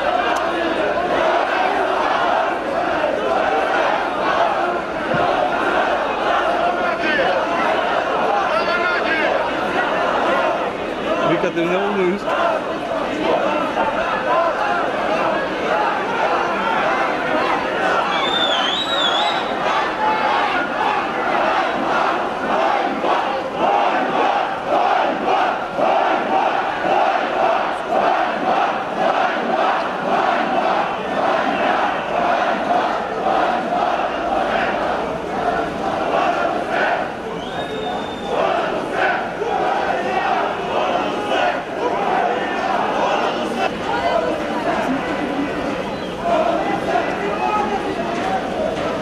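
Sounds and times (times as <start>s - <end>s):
large crowd shouting: 0.0s - 49.0s.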